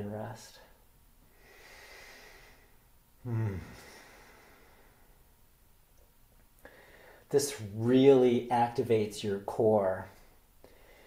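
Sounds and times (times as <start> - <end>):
man breathing out slowly: 1.3 - 5.2, 6.6 - 7.3, 10.6 - 11.0.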